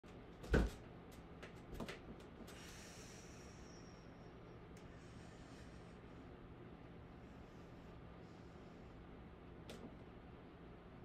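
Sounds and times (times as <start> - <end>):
faint room noise: 0.1 - 11.0.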